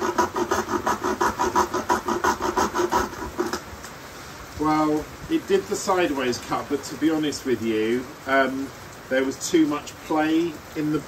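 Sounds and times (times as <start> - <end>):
hand saw rasping through wood: 0.0 - 3.6.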